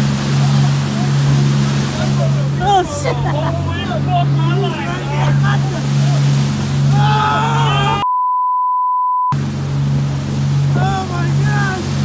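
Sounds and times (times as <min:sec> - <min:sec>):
boat engine droning: 0:00.0 - 0:08.1, 0:09.3 - 0:12.0
people shouting and laughing: 0:01.9 - 0:06.2, 0:06.9 - 0:08.1
censor beep: 0:08.0 - 0:09.4.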